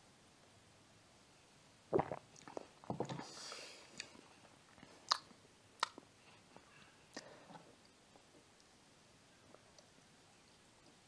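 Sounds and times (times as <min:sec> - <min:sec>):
mouth noises: 0:01.9 - 0:04.2
swallowing soda: 0:01.9 - 0:04.2.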